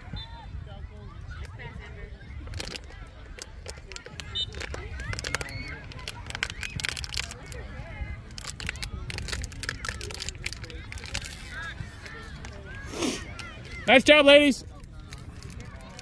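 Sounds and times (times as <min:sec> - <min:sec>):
wind rumbling on microphone: 0:00.0 - 0:13.8.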